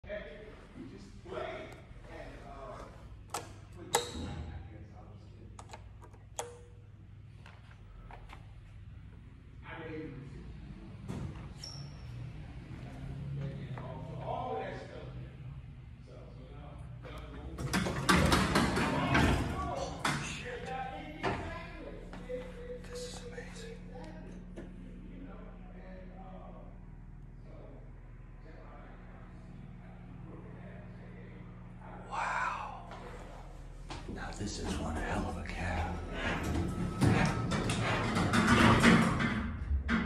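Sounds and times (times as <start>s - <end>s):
elevator button clicks: 3.3s - 4.4s, 5.6s - 6.9s
faint voices: 12.0s - 39.1s
elevator door rolling open: 17.4s - 20.6s, 34.6s - 40.0s.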